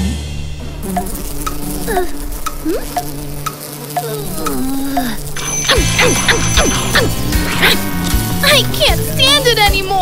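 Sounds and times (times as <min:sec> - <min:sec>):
crackling sizzle effect: 0:00.3 - 0:10.0
short regular blips: 0:00.9 - 0:10.0.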